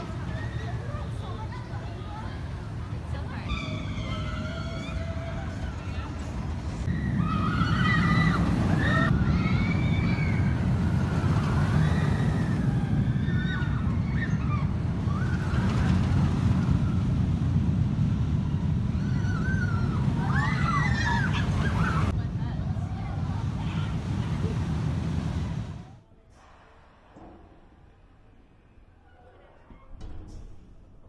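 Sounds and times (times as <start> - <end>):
roller coaster rumbling: 0.0 - 31.0.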